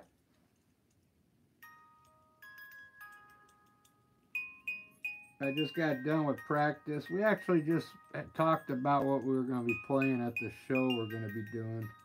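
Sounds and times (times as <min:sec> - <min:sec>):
bell-like chime notes: 0:04.4 - 0:12.0.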